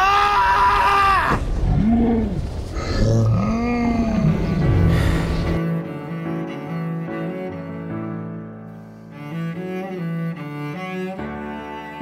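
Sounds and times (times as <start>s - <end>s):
orchestral film music: 3.4s - 12.0s.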